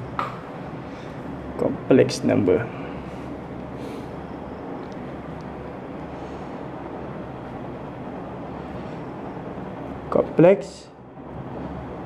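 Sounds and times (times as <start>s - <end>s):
low hum: 0.0s - 12.0s
steady background hiss: 0.0s - 12.0s.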